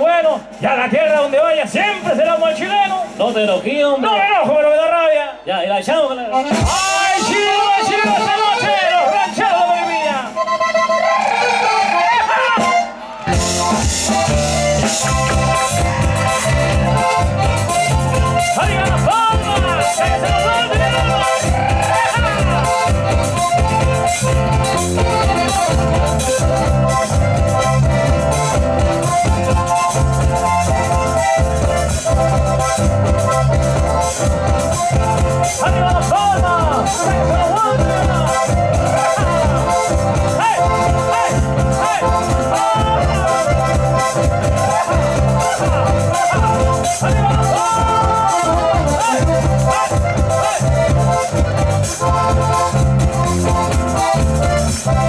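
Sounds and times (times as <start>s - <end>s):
man calling over pa: 0.0s - 27.0s, 34.8s - 52.6s
ranchera band playing: 0.0s - 55.0s.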